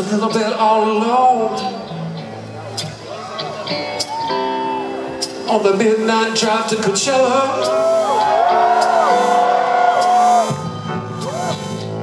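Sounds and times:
live rock band playing softly: 0:00.0 - 0:12.0.

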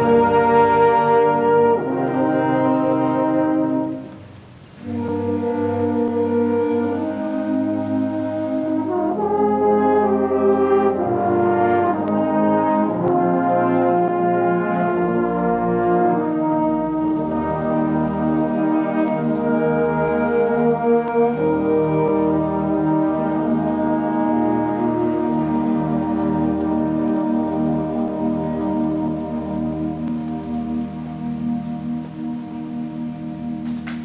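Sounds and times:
concert band playing held chords: 0:00.0 - 0:34.0.

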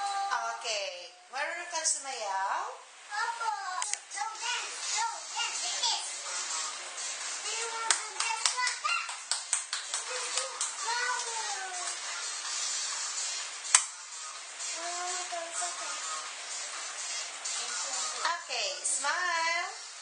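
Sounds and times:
hands clapping: 0:07.8 - 0:12.1, 0:13.7 - 0:14.0.

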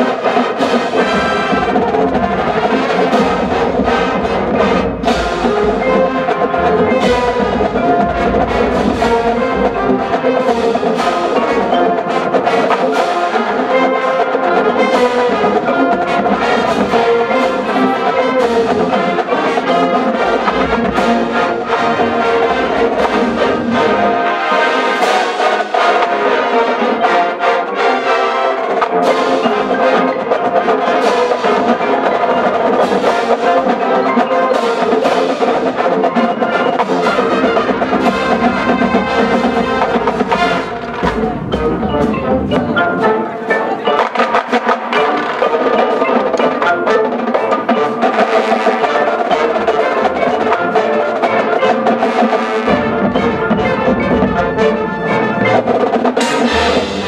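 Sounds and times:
brass melody: 0:00.0 - 0:57.0
drumline percussion: 0:00.0 - 0:57.0
marching band playing: 0:00.0 - 0:57.0.

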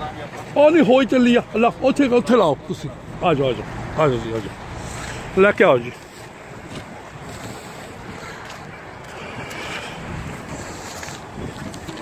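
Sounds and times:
wind buffeting microphone: 0:02.5 - 0:12.0.

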